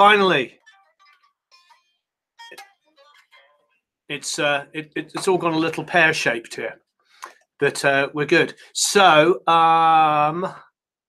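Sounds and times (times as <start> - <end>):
unamplified electric guitar plucked: 0.0 - 6.5.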